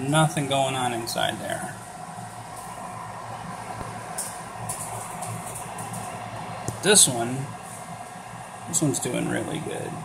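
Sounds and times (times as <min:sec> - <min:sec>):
incubator fan humming: 0:00.0 - 0:10.0.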